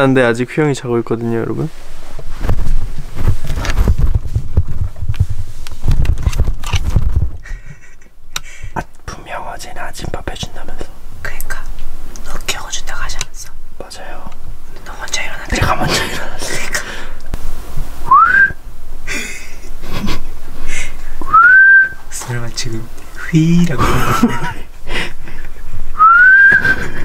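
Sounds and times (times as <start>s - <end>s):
camera handling thuds and rubbing: 2.2s - 7.4s
person whistling rising note: 18.0s - 18.6s, 21.2s - 22.0s, 26.0s - 26.8s.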